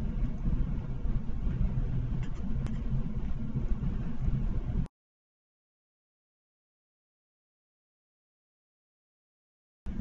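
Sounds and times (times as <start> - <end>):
low background rumble: 0.0 - 4.9.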